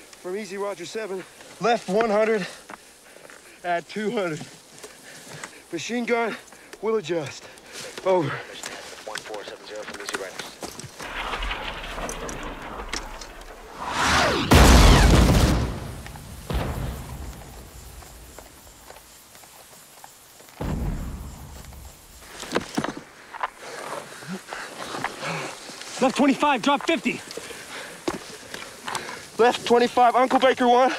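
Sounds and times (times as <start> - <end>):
shell explosions: 11.0 - 18.5, 20.6 - 22.3.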